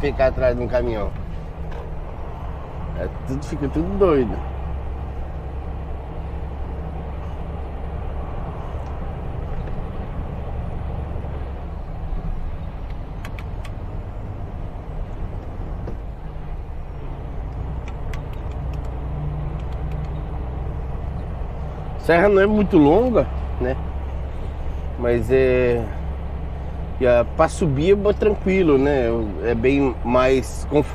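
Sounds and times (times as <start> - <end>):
truck diesel engine drone: 0.0 - 30.9
tyre and road noise: 0.0 - 30.9
faint clicks: 17.5 - 20.3.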